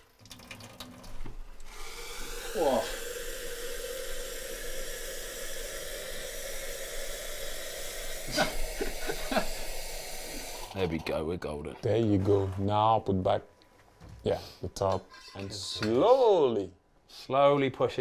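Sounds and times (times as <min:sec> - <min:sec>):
tap water rushing: 0:00.0 - 0:10.8.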